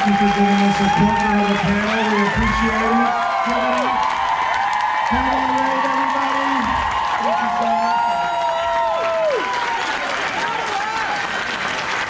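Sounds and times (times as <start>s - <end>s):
audience cheering and whooping: 0.0s - 12.0s
audience clapping: 0.0s - 12.0s.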